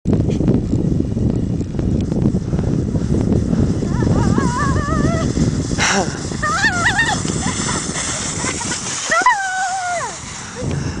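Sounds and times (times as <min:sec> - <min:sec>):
sled rushing over snow: 0:00.1 - 0:11.0
child squealing and laughing: 0:06.4 - 0:10.2.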